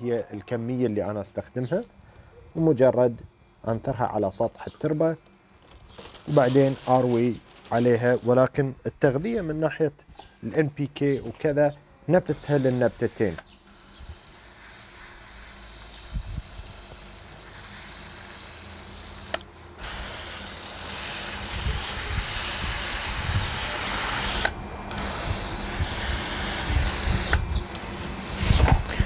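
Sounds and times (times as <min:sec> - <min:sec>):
garden hose spraying water: 0:06.0 - 0:08.3, 0:12.3 - 0:27.6.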